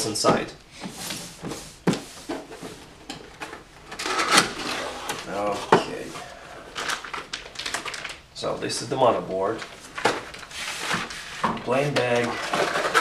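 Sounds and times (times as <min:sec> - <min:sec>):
cardboard lid scraping: 0:04.0 - 0:06.3.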